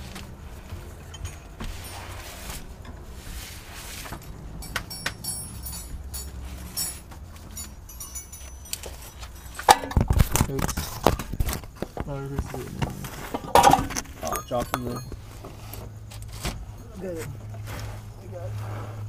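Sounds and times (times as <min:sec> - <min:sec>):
metallic clinks of tools: 0:01.1 - 0:02.4, 0:04.1 - 0:11.3, 0:13.3 - 0:15.6.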